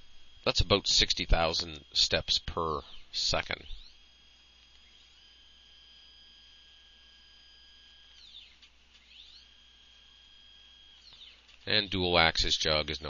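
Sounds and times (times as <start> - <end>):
motors high whine: 0.0 - 13.0.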